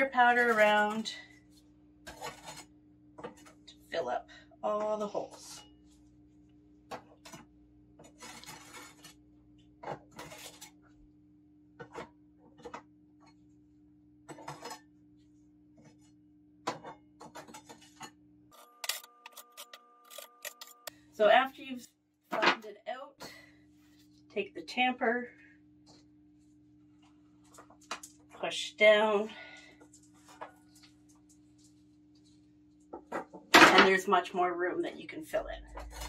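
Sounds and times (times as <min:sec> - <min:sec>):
low steady hum: 0:00.0 - 0:36.0
metal spatula scraping plastic tray: 0:02.1 - 0:03.6, 0:08.0 - 0:09.2, 0:35.7 - 0:36.0.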